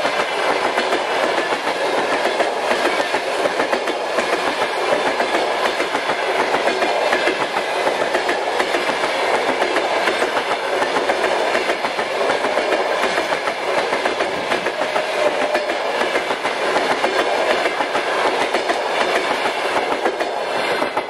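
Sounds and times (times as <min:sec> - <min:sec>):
train wheels clattering over rail joints: 0:00.0 - 0:21.0.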